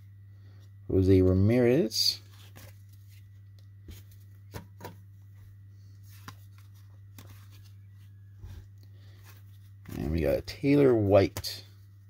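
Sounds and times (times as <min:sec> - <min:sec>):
steady low hum: 0:00.0 - 0:12.0
trading cards flipped by hand: 0:02.3 - 0:05.0, 0:06.0 - 0:10.1.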